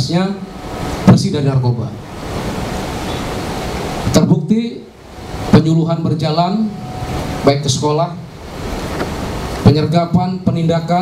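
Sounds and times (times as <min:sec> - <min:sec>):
steady hiss: 0:00.0 - 0:11.0
people talking: 0:01.1 - 0:02.0, 0:04.1 - 0:04.9, 0:05.6 - 0:06.8, 0:07.4 - 0:08.2, 0:09.7 - 0:11.0.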